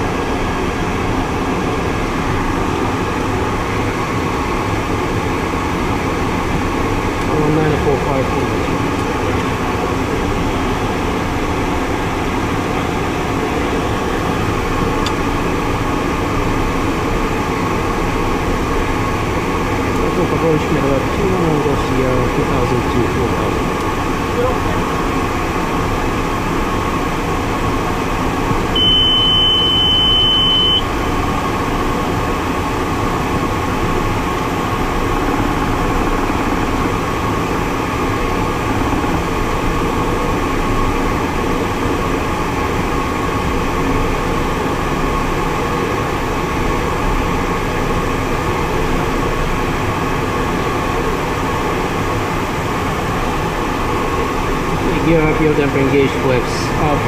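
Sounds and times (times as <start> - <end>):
cockpit airflow and engine drone: 0.0 - 57.0.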